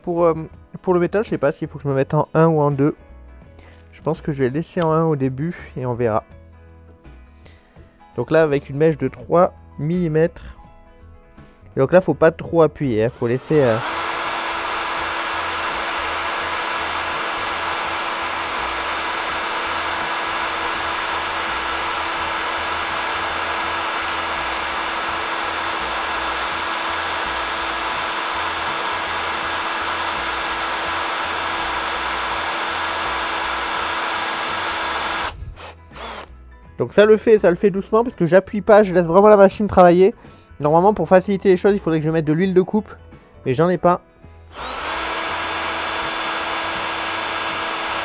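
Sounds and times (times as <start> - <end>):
cordless drill drilling into metal: 13.1 - 36.3, 44.5 - 48.0.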